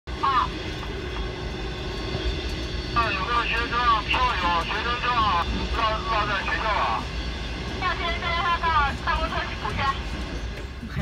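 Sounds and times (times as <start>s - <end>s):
train rumble from inside carriage: 0.1s - 11.0s.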